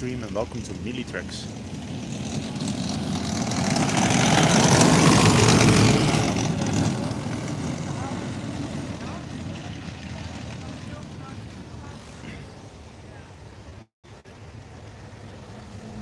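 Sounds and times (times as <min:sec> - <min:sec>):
half-track motorcycle driving past: 0:00.3 - 0:12.7, 0:14.6 - 0:16.0.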